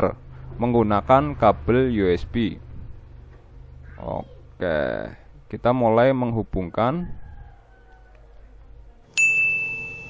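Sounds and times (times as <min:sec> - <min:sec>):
bright electronic ding: 0:09.2 - 0:10.0.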